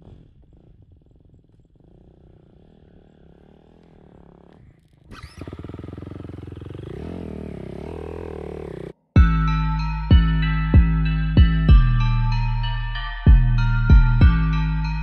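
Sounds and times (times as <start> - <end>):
dirt bike engine revving: 0.1 - 9.0.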